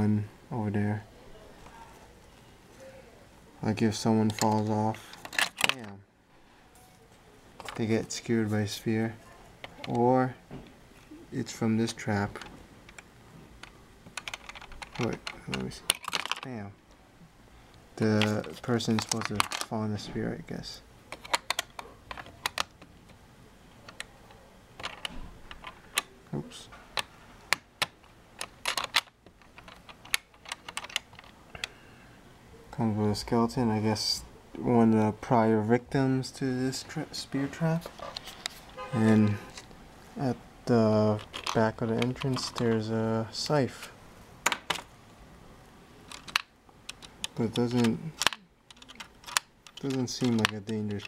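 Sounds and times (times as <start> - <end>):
plastic toy bricks clicking: 12.4 - 16.5, 18.2 - 19.7, 21.1 - 22.9, 24.8 - 26.1, 27.0 - 31.4, 41.2 - 42.7, 46.1 - 51.0.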